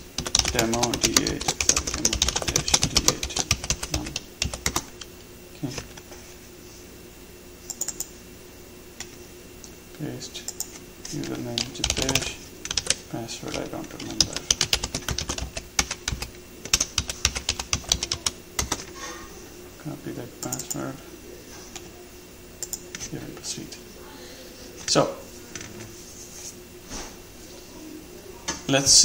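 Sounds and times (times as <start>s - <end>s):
computer keyboard typing: 0.2s - 6.0s, 7.7s - 8.1s, 10.4s - 19.0s, 20.4s - 20.8s, 22.6s - 23.1s.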